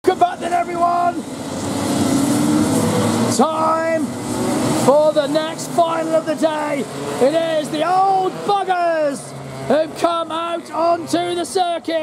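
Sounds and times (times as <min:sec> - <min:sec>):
go-kart engines running: 0:00.0 - 0:12.0.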